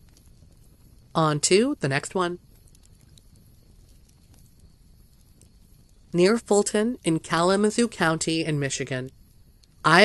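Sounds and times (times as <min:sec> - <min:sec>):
low steady rumble: 0:00.0 - 0:10.0
narration: 0:01.2 - 0:02.4, 0:06.2 - 0:09.1
soft ticks: 0:02.4 - 0:06.2, 0:09.0 - 0:09.8.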